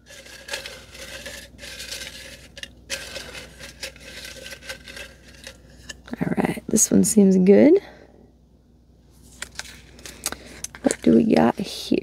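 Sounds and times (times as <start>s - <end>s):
paper slips rustling: 0.0s - 5.6s
light clicks and scrapes on pot: 0.0s - 6.1s.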